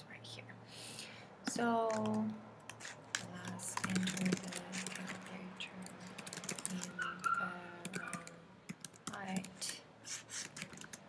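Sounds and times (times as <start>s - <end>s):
computer keyboard typing: 1.9s - 11.0s.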